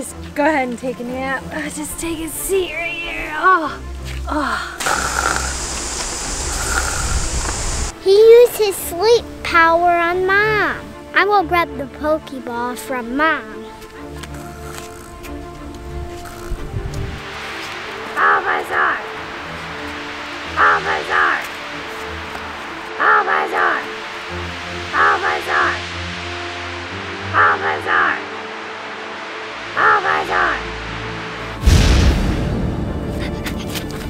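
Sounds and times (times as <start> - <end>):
background music: 0.0 - 34.0
loud sudden burst: 4.8 - 7.9, 28.2 - 33.2.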